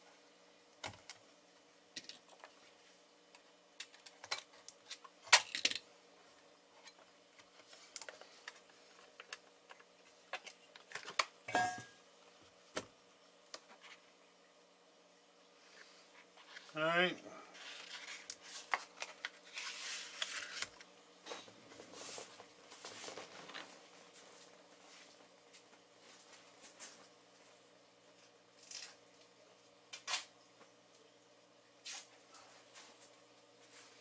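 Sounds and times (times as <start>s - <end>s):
faint electrical hum: 0.0s - 34.0s
plastic sheet rustling: 21.7s - 24.2s.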